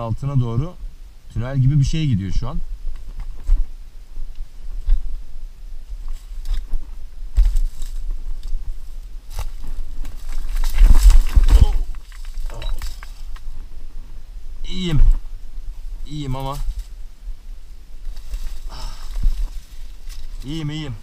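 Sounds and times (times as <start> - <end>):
footsteps through dry brush: 2.8 - 13.7, 16.4 - 21.0
twigs crackling: 5.8 - 14.2, 14.8 - 21.0
stones knocking and crunching: 6.1 - 8.6, 9.3 - 13.6
camera handling rumble: 9.4 - 13.5.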